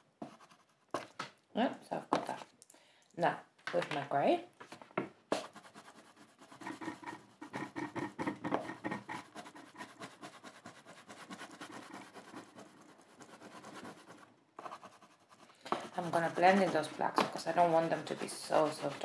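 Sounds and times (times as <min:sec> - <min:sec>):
pastel scratching on paper: 0:05.3 - 0:19.0.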